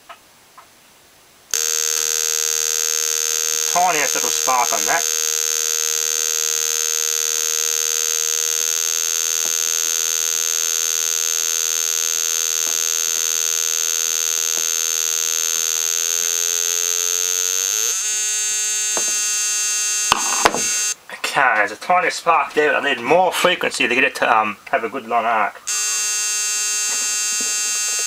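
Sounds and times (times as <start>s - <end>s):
sharp clicks: 1.5s - 2.2s
transformer whining buzz: 1.5s - 21.0s, 25.6s - 28.0s.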